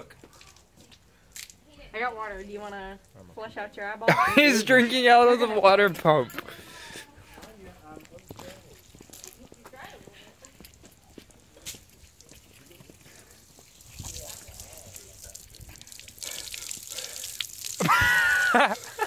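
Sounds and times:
water pouring and splashing: 10.4 - 19.0.

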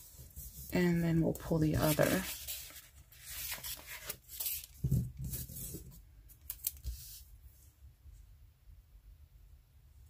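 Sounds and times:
papery rustles: 1.5 - 7.2.

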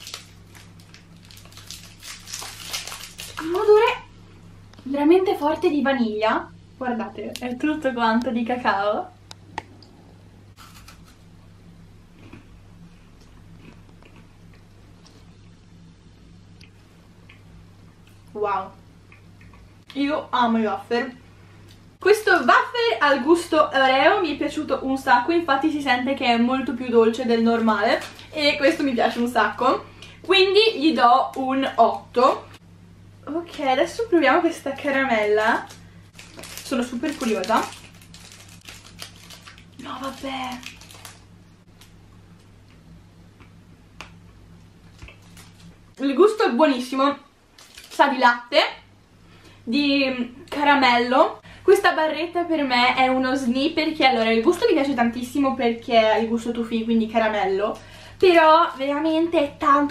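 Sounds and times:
wrapper crinkling: 0.0 - 3.9, 27.6 - 29.2, 34.8 - 42.0, 44.8 - 45.8, 47.5 - 48.2
low steady hum: 0.0 - 59.9
chewing crunches: 12.2 - 12.5, 13.2 - 15.2.

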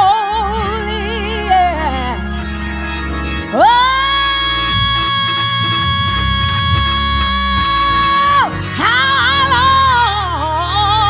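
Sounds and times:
live band with bass and guitar: 0.7 - 11.0
person singing long high note: 3.6 - 10.3.

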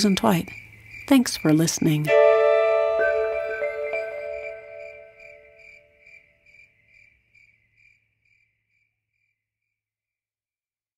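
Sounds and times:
cricket chirping: 0.0 - 9.5
soft musical chord: 2.1 - 5.7.

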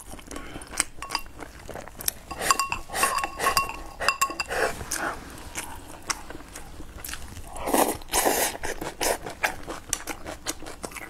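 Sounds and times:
chopsticks clinking on ceramic bowl: 0.9 - 4.7
slurping sips: 7.4 - 9.2.

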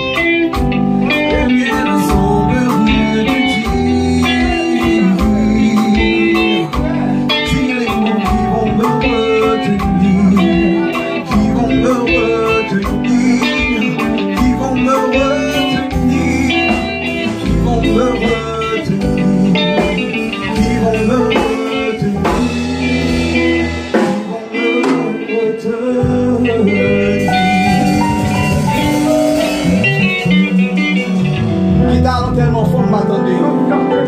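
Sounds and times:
drum kit: 0.0 - 34.0
electric bass guitar: 0.0 - 34.0
electronic keyboard chords: 0.0 - 34.0.

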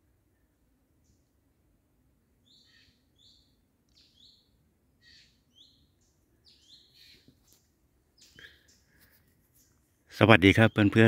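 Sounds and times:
quiet forest background: 0.0 - 11.0
faint bird calls: 2.4 - 9.8.

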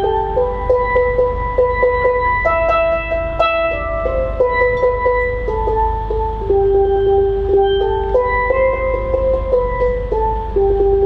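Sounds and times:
steel pan melody: 0.0 - 11.0.

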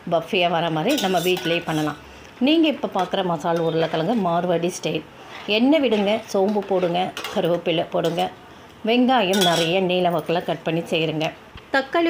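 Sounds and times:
woman speaking: 0.0 - 12.0
utensil clattering against pan: 9.3 - 9.8.

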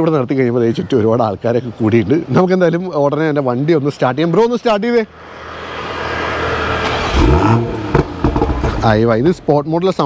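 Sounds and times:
car engine revving: 5.2 - 9.3.

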